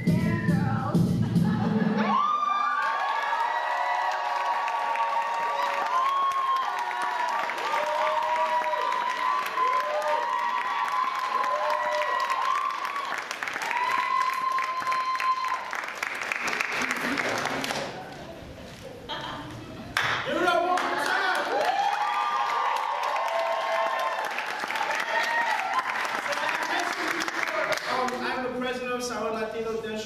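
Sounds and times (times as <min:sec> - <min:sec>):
audience cheering and whooping: 0:01.2 - 0:18.4, 0:20.4 - 0:27.7
audience clapping: 0:02.1 - 0:18.4, 0:19.9 - 0:28.5.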